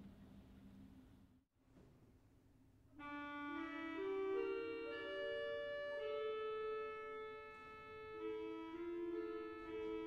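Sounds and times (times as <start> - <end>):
pipe organ chord: 3.0 - 10.0.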